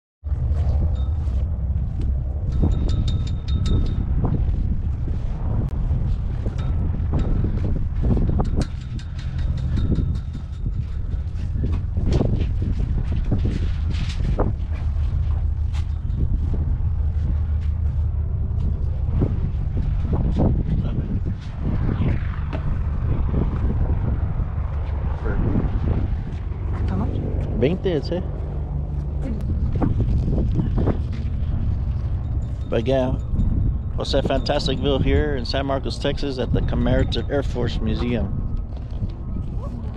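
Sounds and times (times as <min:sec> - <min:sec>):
low rumble: 0:00.2 - 0:39.9
footsteps: 0:00.3 - 0:03.4, 0:04.0 - 0:20.6.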